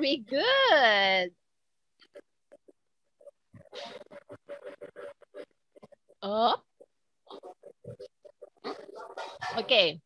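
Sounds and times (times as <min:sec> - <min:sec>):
person's voice in broken fragments: 0:02.0 - 0:10.0.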